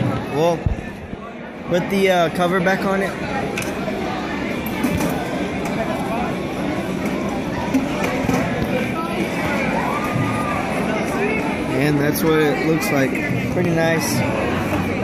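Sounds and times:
babble of people talking: 0.0 - 15.0.

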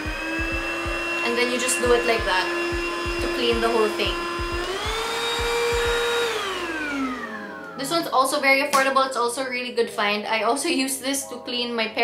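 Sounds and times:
vacuum motor whining: 0.0 - 8.4.

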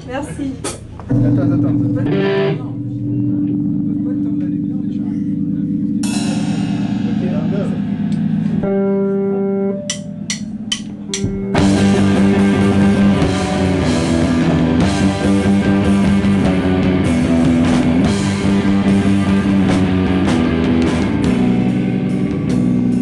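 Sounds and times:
rock band with drums and cymbals: 0.0 - 23.0
electric guitar chords ringing: 1.0 - 23.0.

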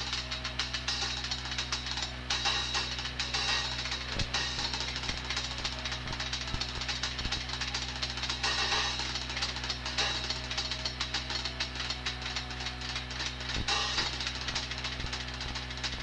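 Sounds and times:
drum kit playing: 0.0 - 16.0
low recording hum: 0.0 - 16.0.

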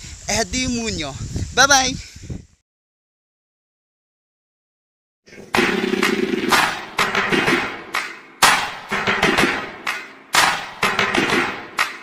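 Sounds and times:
loud music with percussive hits: 5.5 - 12.0.

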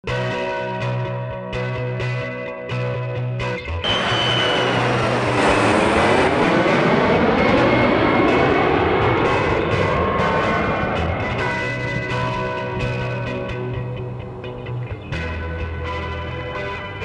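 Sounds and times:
jet airliner passing overhead: 3.8 - 15.0
sustained musical notes: 3.8 - 16.2.

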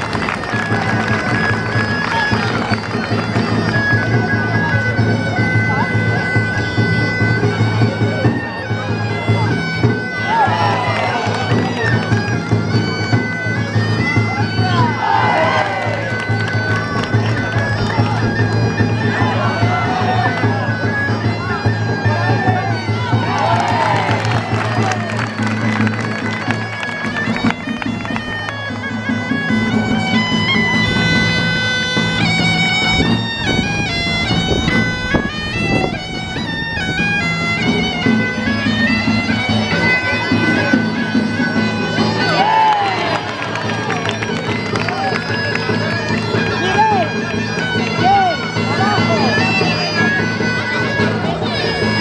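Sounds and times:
bagpipe playing dance tune: 0.0 - 52.0
drum beating: 0.0 - 52.0.

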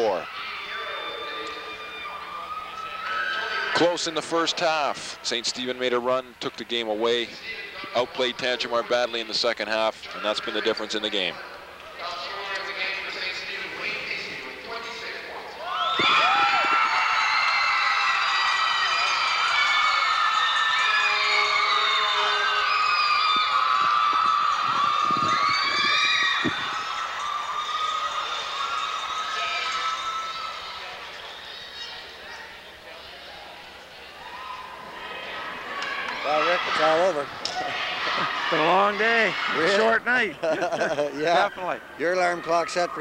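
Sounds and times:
young crowd cheering and shouting: 0.0 - 4.8, 15.6 - 32.6, 34.0 - 43.0.

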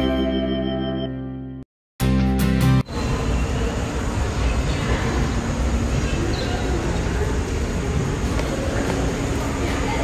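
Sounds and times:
busy indoor hall with machinery: 2.8 - 10.0.

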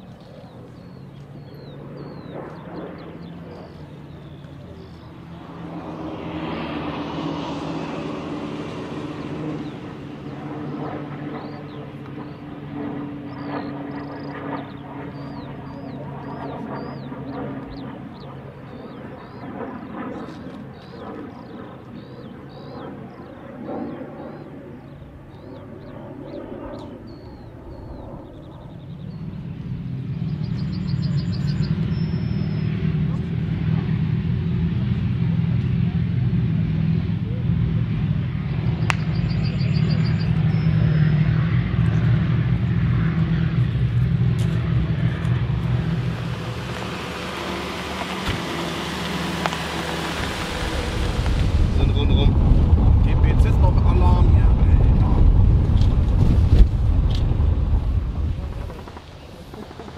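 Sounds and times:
road noise: 0.0 - 19.4, 28.8 - 59.9
armoured vehicle engines droning: 0.0 - 23.4, 24.4 - 59.9
rushing wind: 36.3 - 59.9.

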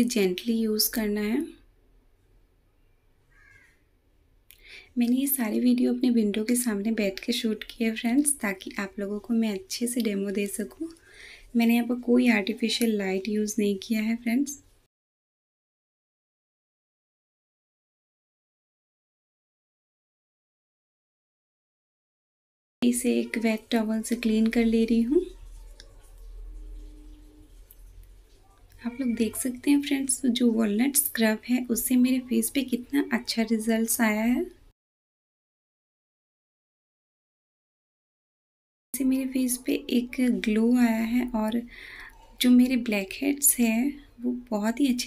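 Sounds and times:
faint crow caw: 3.3 - 3.9
short breath: 4.6 - 5.0, 11.0 - 11.5, 41.7 - 42.2
person speaking: 22.8 - 26.2, 28.3 - 34.6.

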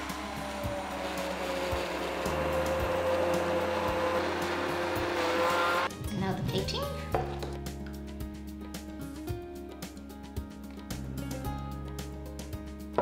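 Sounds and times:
stick blender whirring: 0.0 - 5.9.

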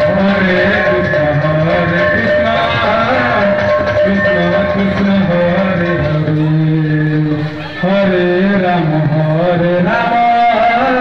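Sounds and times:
barrel drum: 0.0 - 6.5.

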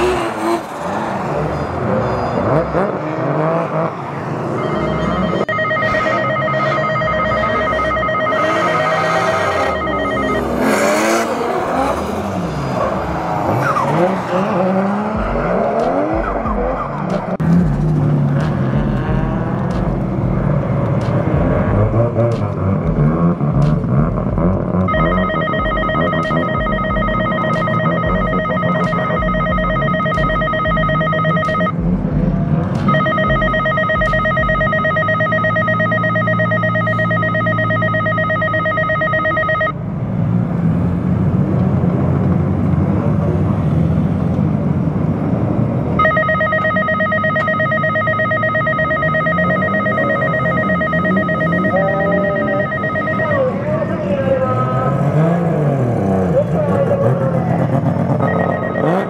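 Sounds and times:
car engines idling: 0.0 - 59.0
electric alarm ringing: 4.6 - 11.2, 24.9 - 31.7, 32.9 - 39.8, 46.0 - 53.5, 58.2 - 59.0.

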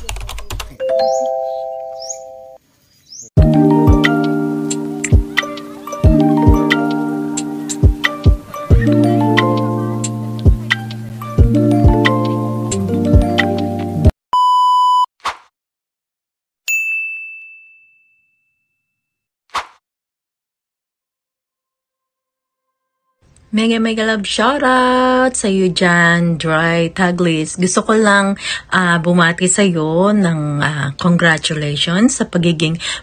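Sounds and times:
bell-like ding: 16.7 - 19.1.

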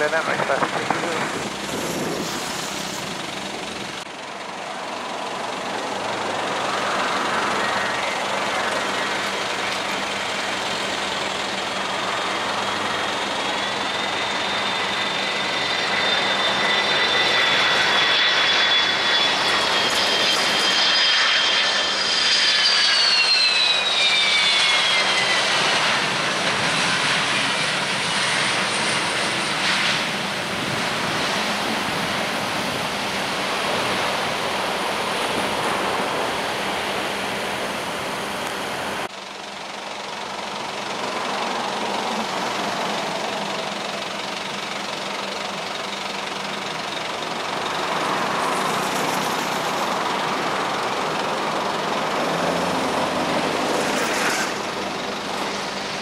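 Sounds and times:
jet engines roaring on landing: 0.0 - 56.0
turboprop hum: 0.0 - 56.0.

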